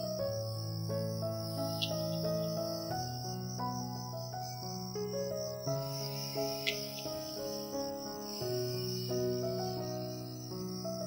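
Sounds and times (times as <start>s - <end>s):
crickets chirring: 0.0s - 11.0s
soft music with held notes: 0.0s - 11.0s.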